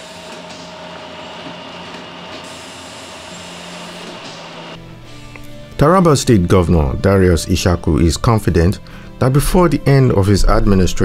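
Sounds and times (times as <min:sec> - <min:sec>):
packaging machinery humming: 0:00.0 - 0:04.8.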